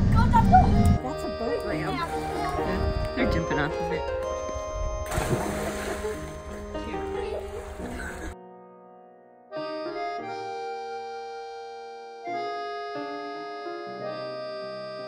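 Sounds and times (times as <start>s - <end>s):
background music: 0.0s - 15.0s
child splashing into water: 5.1s - 8.4s
water churning: 5.1s - 8.4s.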